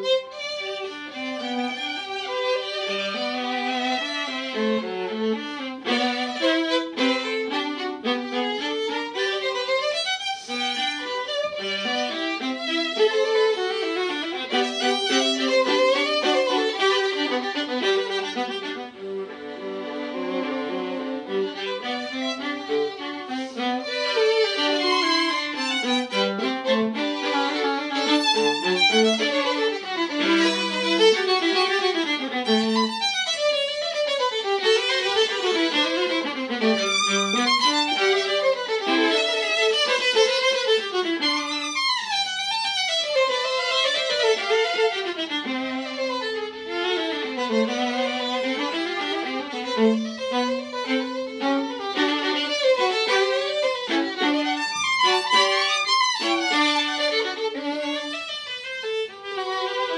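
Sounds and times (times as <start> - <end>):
violin and viola bowed duet: 0.0 - 59.9.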